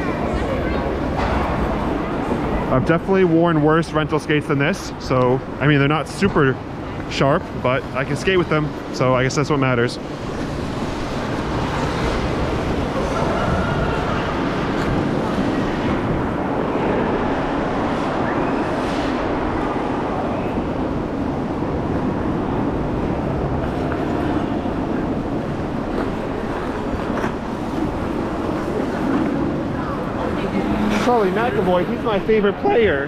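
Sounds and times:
murmur of voices: 0.0 - 20.8, 27.8 - 33.0.

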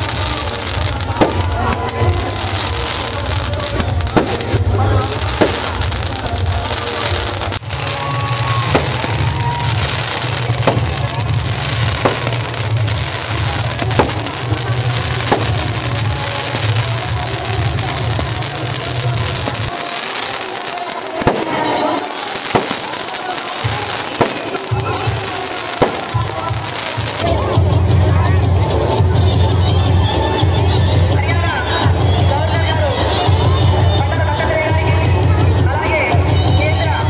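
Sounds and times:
music with deep bass: 0.0 - 19.7, 25.4 - 37.0
fireworks bangs and crackling: 0.0 - 37.0.

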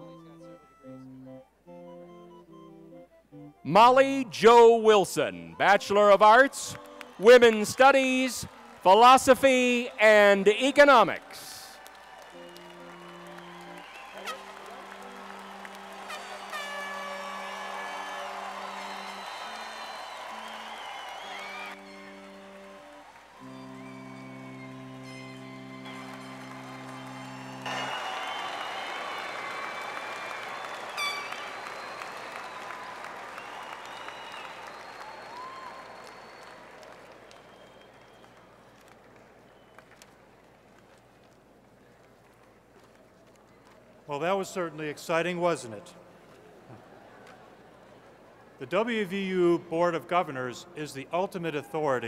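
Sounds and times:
music of long held chords: 0.0 - 3.6, 12.3 - 30.2
audience applauding and cheering: 5.6 - 41.0
whistles: 12.2 - 22.7, 26.7 - 40.1.

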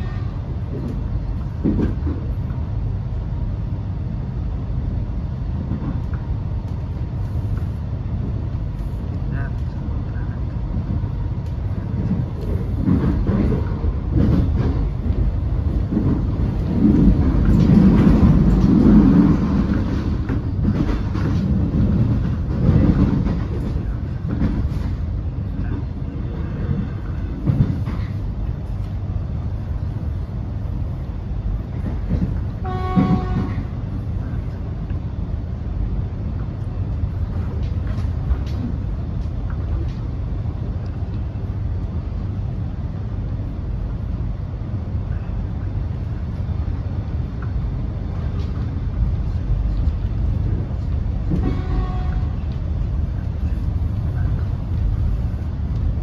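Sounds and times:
train wheels rumbling on track: 0.0 - 56.0.

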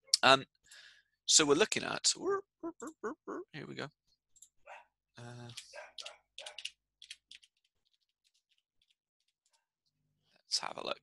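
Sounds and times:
computer keyboard typing clicks: 5.5 - 7.5.

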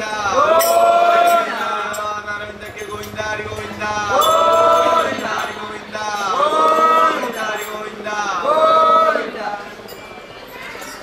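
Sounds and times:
men chanting together: 0.0 - 9.6.

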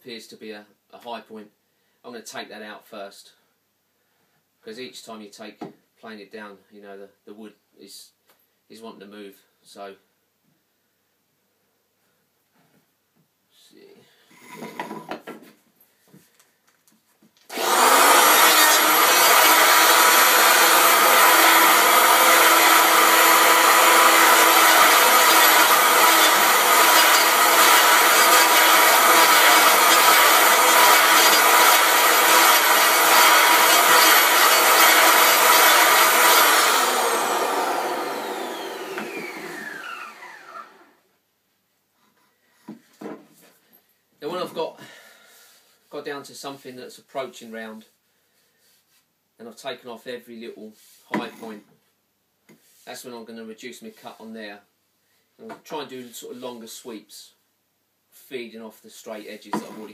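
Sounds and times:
electric hand planer running: 17.5 - 40.9.

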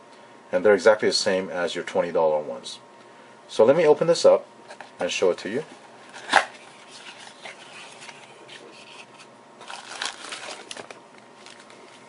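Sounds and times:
cardboard and plastic bag rustling: 6.1 - 12.0
cardboard box snapping open: 6.2 - 6.6.

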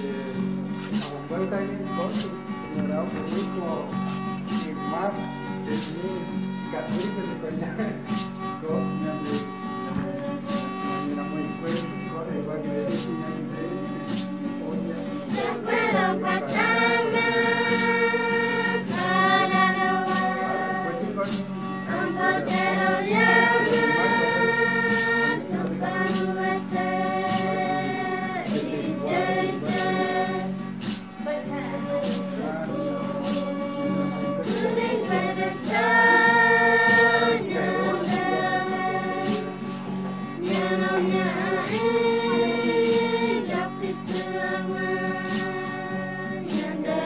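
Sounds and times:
sharp beat: 0.4 - 6.2, 6.8 - 12.2, 15.3 - 45.8
choir singing: 13.0 - 47.0.

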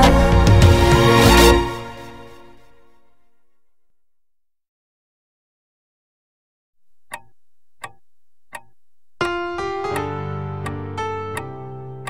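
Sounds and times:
sharp clock-like ticks: 6.9 - 9.4.

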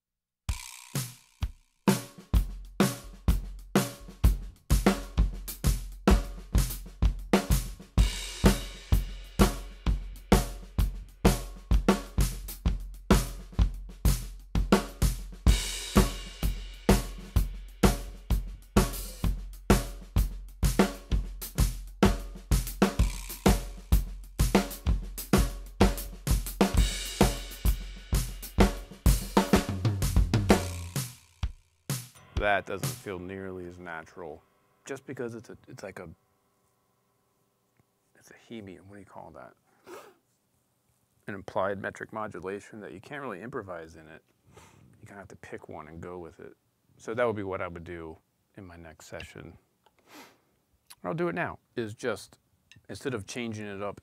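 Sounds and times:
drum kit playing: 0.5 - 33.9.

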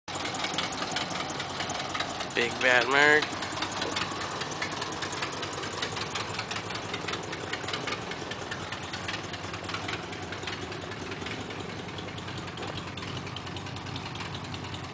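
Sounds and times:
car engine idling: 0.1 - 14.9.

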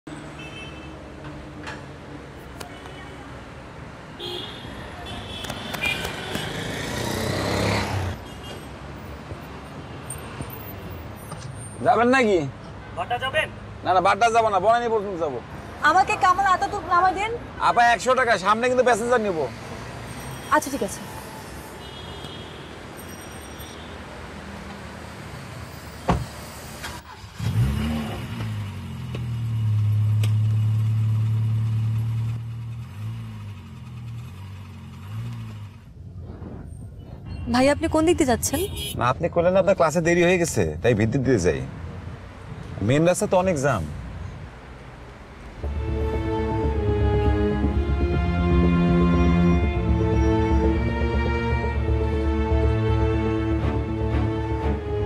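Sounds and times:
car door shutting: 26.0 - 27.0
car driving up and stopping: 26.0 - 36.9.

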